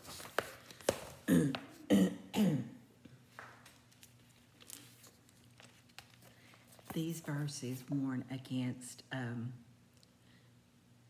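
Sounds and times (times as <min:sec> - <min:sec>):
woman coughing: 0:01.3 - 0:02.8.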